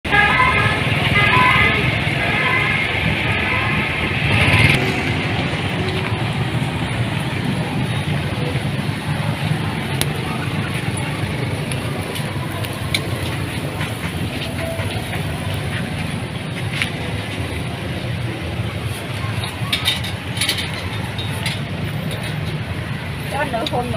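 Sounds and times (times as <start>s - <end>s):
traffic rumble: 0.0s - 23.9s.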